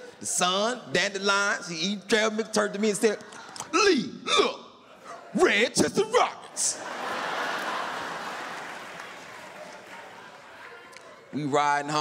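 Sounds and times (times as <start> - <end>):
audience laughing: 6.6 - 11.4.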